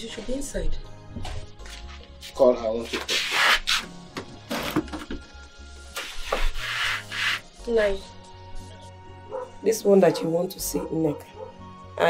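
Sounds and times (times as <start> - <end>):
film music with low bass line: 0.0 - 12.0
plastic chair scraping on floor: 3.0 - 5.2, 6.0 - 7.4.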